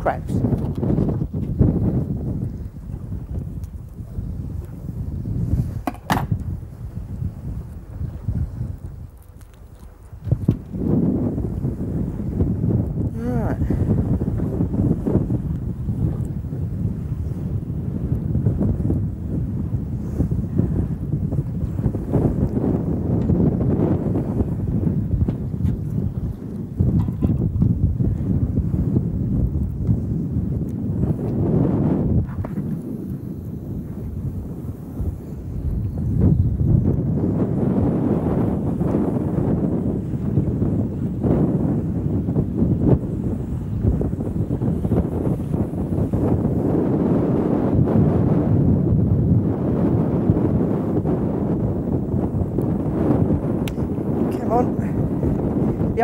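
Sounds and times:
strong wind buffeting microphone: 0.0 - 56.0.

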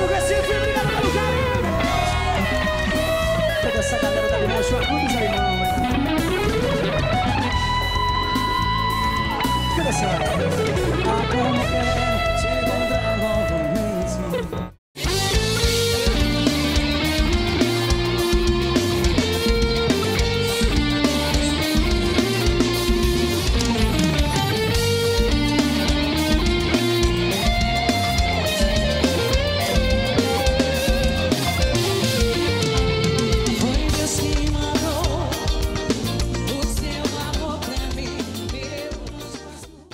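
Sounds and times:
backing track with steady beat: 0.0 - 39.9
electric guitar lead melody: 0.0 - 39.9.

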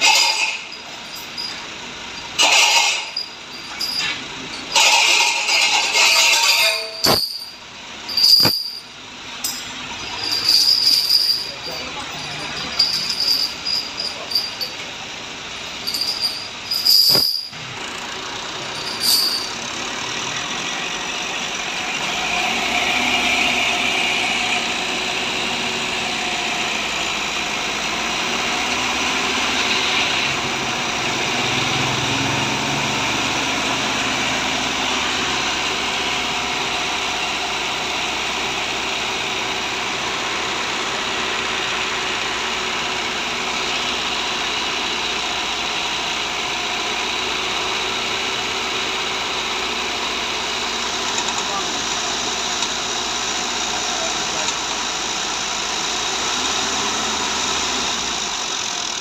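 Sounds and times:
truck diesel engine idling: 0.0 - 59.0.

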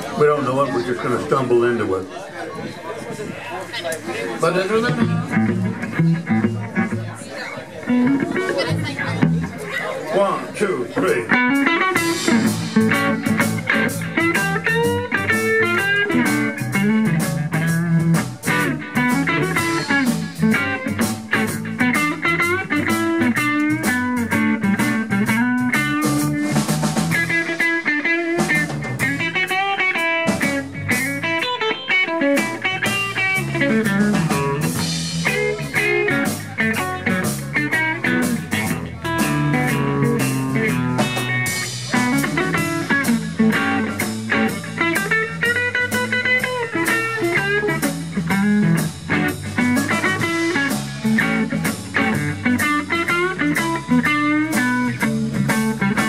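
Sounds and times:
drum kit: 4.8 - 7.1, 11.0 - 56.0
electric bass: 4.8 - 7.2, 7.8 - 9.8, 11.0 - 56.0
electric guitar lead with bends: 4.8 - 10.0, 11.1 - 56.0.

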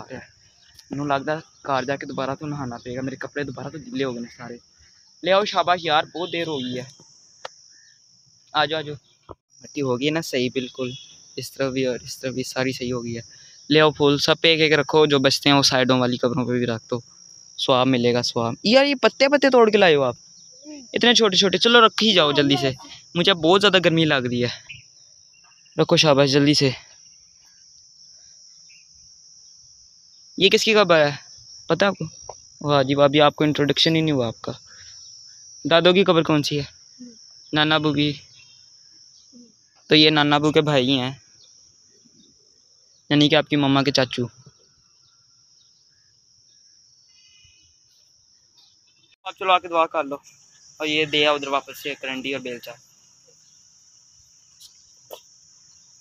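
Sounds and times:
insect chorus drone: 0.0 - 56.0
person speaking: 0.9 - 4.6, 5.2 - 7.0, 20.7 - 24.6, 49.3 - 52.8.

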